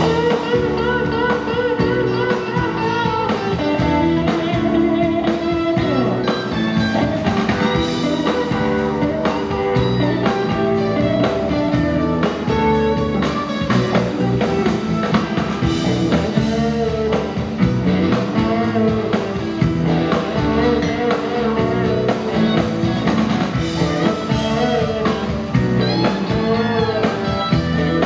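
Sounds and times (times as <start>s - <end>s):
bass guitar: 0.0s - 28.0s
drums: 0.0s - 28.0s
electric guitars: 0.0s - 28.0s.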